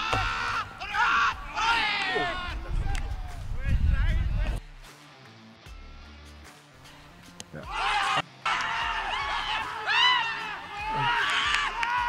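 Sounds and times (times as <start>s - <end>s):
players crying out: 7.7s - 12.0s.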